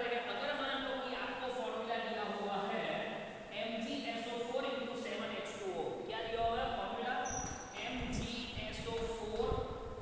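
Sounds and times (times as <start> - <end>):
man talking: 0.0 - 9.7.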